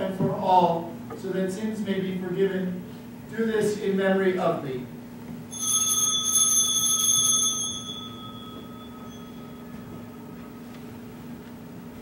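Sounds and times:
altar bells jingling: 5.5s - 10.7s.

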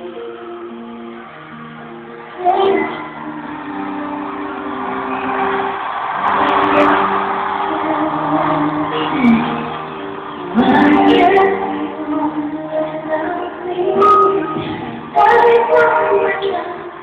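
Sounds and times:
crowd noise: 0.0s - 17.0s
pop ballad keyboard chords: 0.0s - 17.0s
person singing: 2.3s - 17.0s.

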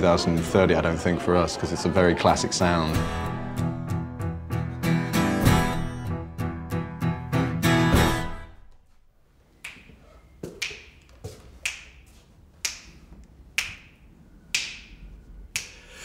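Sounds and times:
acoustic guitar chord strummed: 3.0s - 8.8s
finger snaps with echo: 9.6s - 10.0s, 10.6s - 15.9s.

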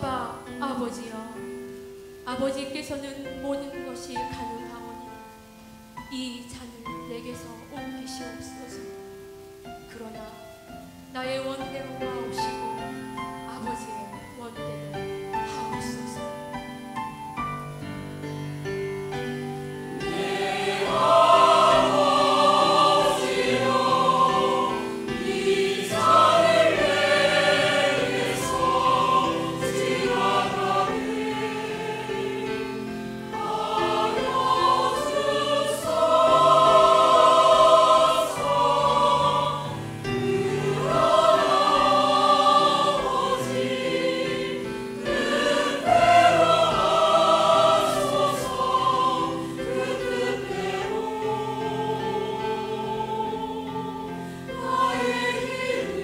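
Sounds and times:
mixed choir singing slowly: 7.2s - 56.0s.

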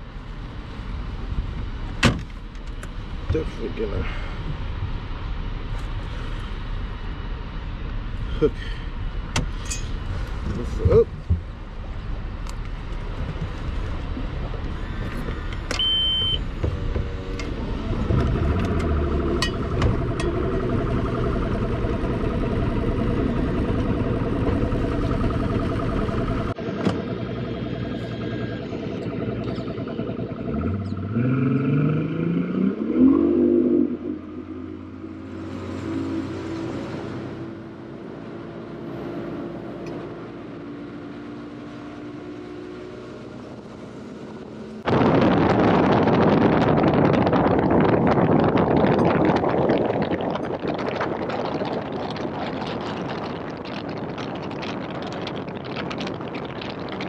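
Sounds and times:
outboard engine running: 13.3s - 31.8s, 42.9s - 57.0s.

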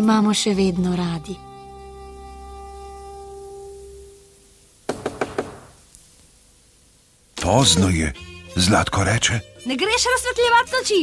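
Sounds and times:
knocks on wooden door: 4.9s - 5.8s.

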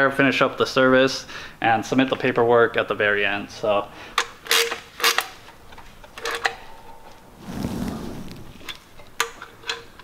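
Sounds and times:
low rushing noise: 6.8s - 8.6s.

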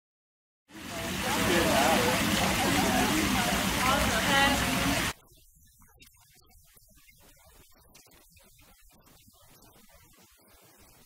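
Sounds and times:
voices: 0.7s - 5.1s.

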